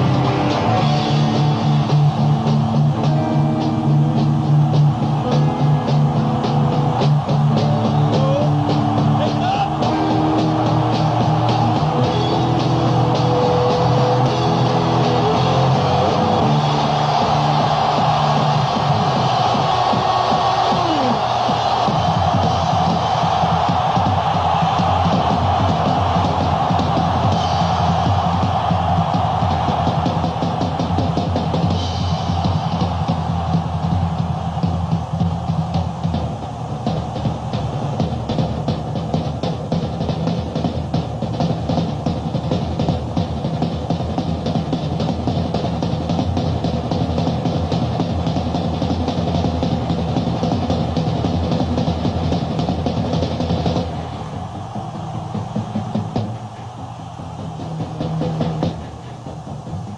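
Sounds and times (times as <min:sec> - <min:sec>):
rock drum kit played hard: 0:00.0 - 0:59.9.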